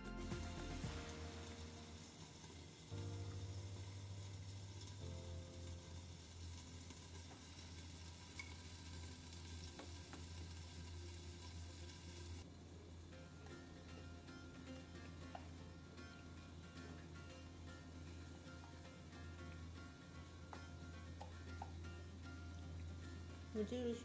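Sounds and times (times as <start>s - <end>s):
food sizzling: 0.0s - 24.0s.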